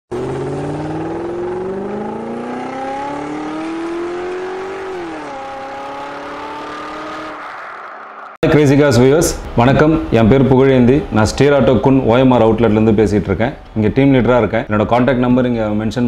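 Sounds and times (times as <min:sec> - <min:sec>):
car engine accelerating: 0:00.1 - 0:08.4.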